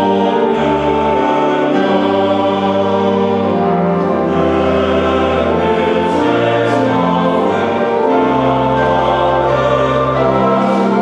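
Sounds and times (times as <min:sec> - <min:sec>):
male choir singing a hymn: 0:00.0 - 0:11.0
organ bass notes: 0:00.0 - 0:11.0.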